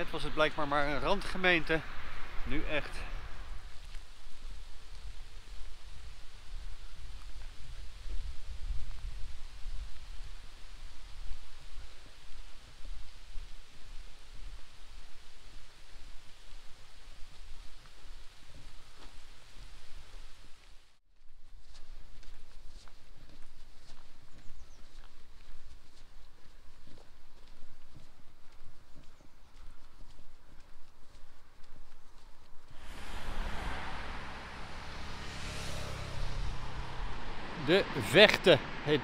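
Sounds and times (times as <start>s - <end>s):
light rain hiss: 0.1s - 21.0s, 32.7s - 38.9s
wind rumble on microphone: 3.1s - 20.4s, 32.7s - 37.5s.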